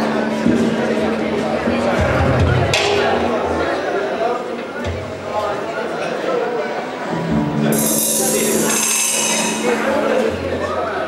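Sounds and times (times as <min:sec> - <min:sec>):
band chord ringing out: 0:07.6 - 0:10.8
metallic cymbal crash: 0:07.7 - 0:10.5.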